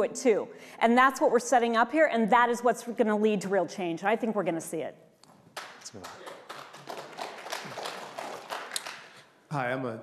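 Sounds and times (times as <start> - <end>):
audience applauding: 5.6 - 9.2.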